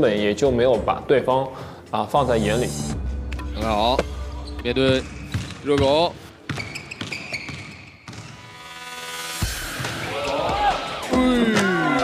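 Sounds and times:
background music: 0:00.0 - 0:12.0
basketball bouncing on hard floor: 0:05.0 - 0:08.4.

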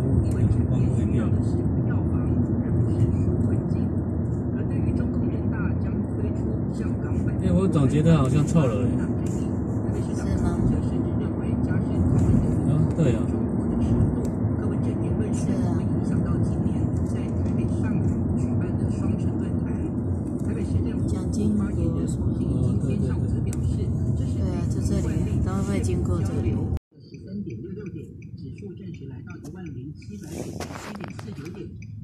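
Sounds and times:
vehicle rumble inside cabin: 0:00.0 - 0:32.0.

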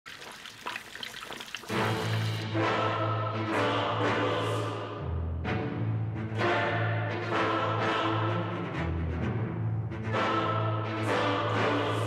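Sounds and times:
water trickling and splashing: 0:00.0 - 0:02.4.

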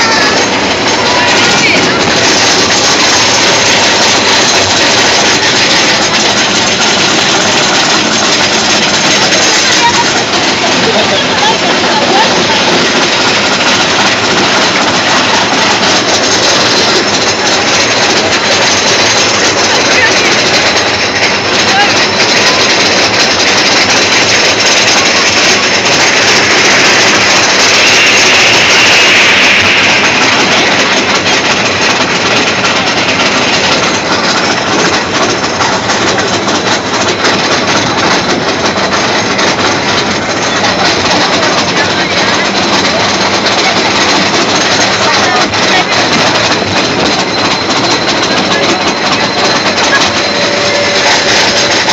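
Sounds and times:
riders' voices: 0:00.0 - 0:04.4, 0:08.2 - 0:22.8, 0:38.8 - 0:51.9
roller coaster rattling on track: 0:00.0 - 0:51.9.

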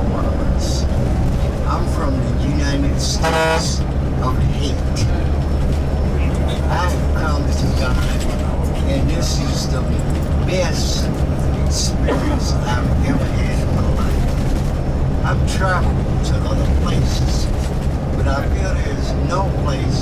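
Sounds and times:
bus engine drone and road noise: 0:00.0 - 0:20.0
vehicle horn: 0:03.2 - 0:03.8.

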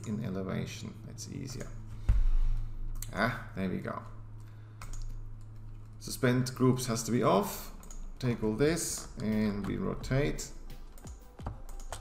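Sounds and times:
steady low hum: 0:00.0 - 0:12.0
keyboard keys clicking: 0:07.8 - 0:10.1, 0:10.7 - 0:12.0.

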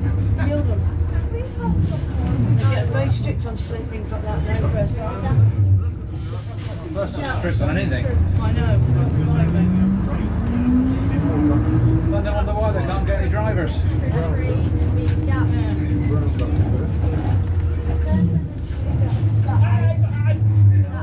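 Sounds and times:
bus engine rumbling with whine: 0:00.0 - 0:21.0
voices talking: 0:00.0 - 0:21.0.

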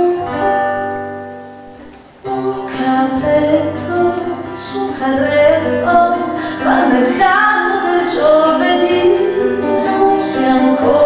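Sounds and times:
acoustic guitar: 0:00.0 - 0:11.0
woman singing: 0:02.3 - 0:11.0.

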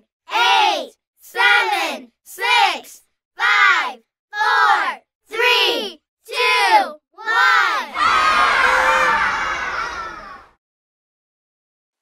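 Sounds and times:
child shouting: 0:03.4 - 0:10.5
children cheering and shouting: 0:06.6 - 0:10.6.

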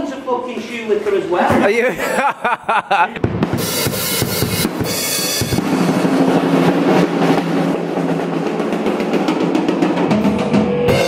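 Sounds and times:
drum roll: 0:03.2 - 0:11.0.

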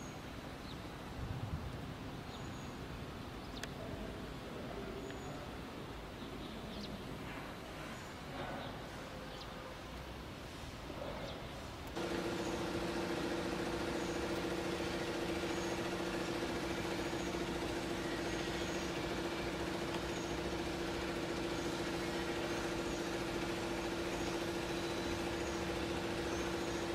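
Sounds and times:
machine motors humming: 0:11.8 - 0:26.9.

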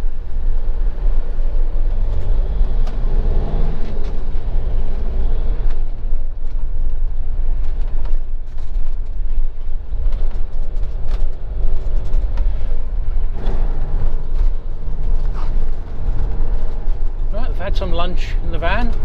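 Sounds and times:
engine and road rumble: 0:00.0 - 0:19.0.

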